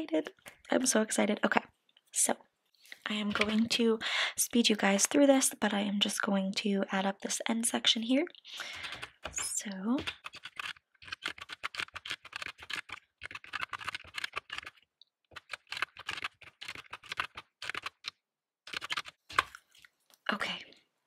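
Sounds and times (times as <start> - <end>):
calculator keys clicking: 8.7 - 9.3, 10.0 - 14.7, 15.4 - 18.1.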